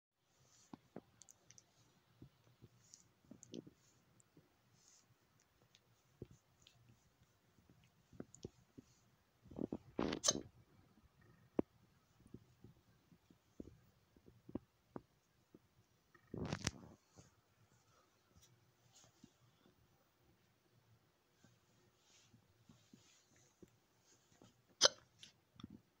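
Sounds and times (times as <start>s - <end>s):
faint small noises: 0.2s - 26.0s
hand stroking cat fur: 1.6s - 9.8s
person hiccuping: 24.8s - 25.1s.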